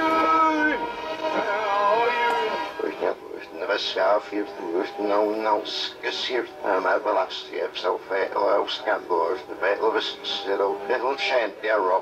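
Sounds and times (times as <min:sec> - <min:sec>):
tape playing backwards: 0:00.0 - 0:12.0.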